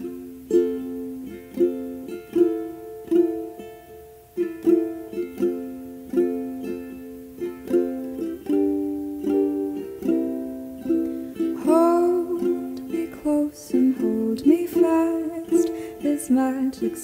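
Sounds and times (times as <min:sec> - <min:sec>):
person singing: 0:00.0 - 0:17.0
ukulele playing slow song: 0:00.0 - 0:17.0.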